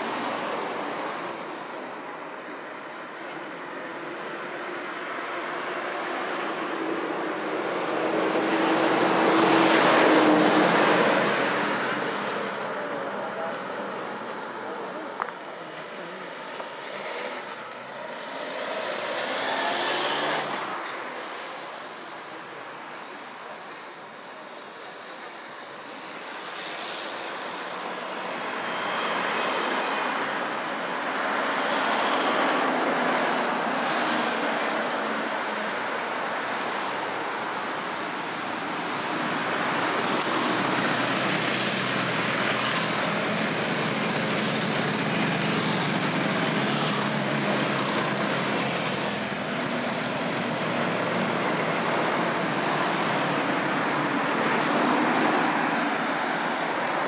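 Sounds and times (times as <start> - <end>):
road traffic noise: 0.0 - 57.0.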